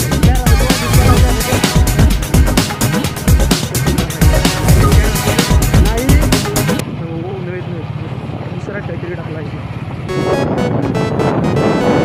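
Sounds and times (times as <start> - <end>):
people's voices: 0.0 - 3.2
vehicle engine rumble: 0.0 - 12.0.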